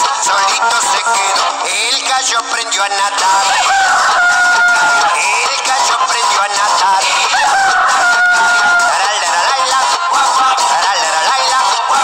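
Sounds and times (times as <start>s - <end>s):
children's song backing music: 0.0s - 12.0s
cartoon chicken crowing: 3.3s - 5.3s, 7.0s - 9.6s.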